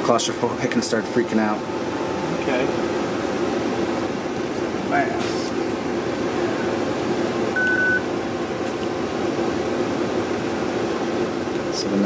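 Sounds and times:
ventilation hum: 0.0s - 12.0s
short electronic beep: 7.6s - 8.0s.

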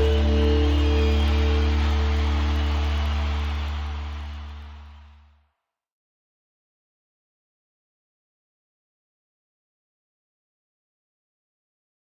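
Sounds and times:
music held chord with bass: 0.0s - 5.2s.

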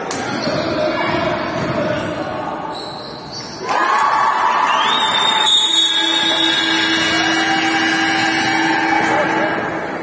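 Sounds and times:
crowd noise in sports hall: 0.0s - 10.0s.

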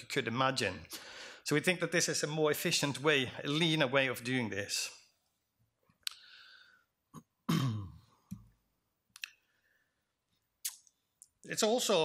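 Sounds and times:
breaths and mouth clicks: 6.0s - 6.3s
man clearing his throat: 7.2s - 8.1s.

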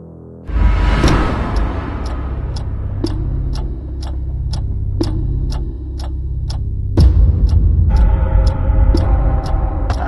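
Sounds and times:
clock ticking: 0.5s - 10.0s
deep steady drone: 0.5s - 10.0s.

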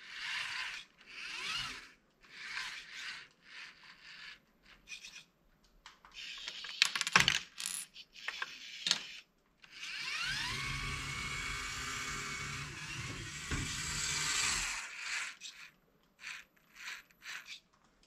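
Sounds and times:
electric motor and gears whining: 0.0s - 5.2s, 8.6s - 17.6s.

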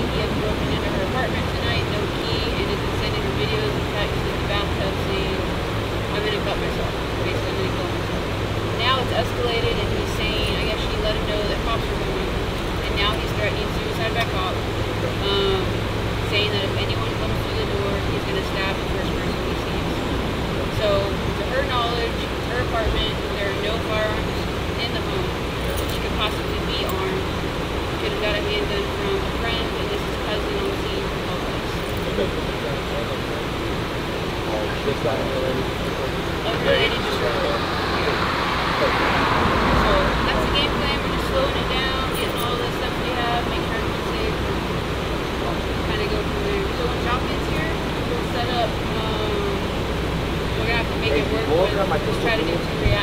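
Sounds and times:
idling cars and road traffic hum: 0.0s - 53.0s
indistinct conversation: 0.0s - 53.0s.

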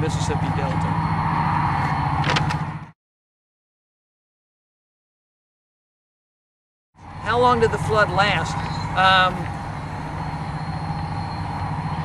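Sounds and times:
low engine hum: 0.0s - 3.0s, 7.0s - 12.0s.

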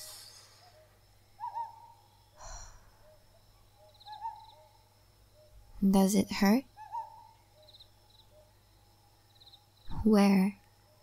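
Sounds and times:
owl hoot: 0.0s - 3.2s, 3.8s - 4.7s, 6.8s - 8.5s
quiet forest ambience: 0.0s - 11.0s
soft breathy exhale: 2.4s - 3.0s.

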